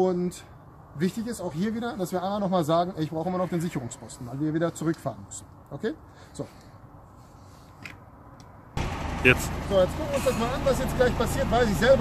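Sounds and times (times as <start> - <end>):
truck diesel engine running: 8.8 - 12.0.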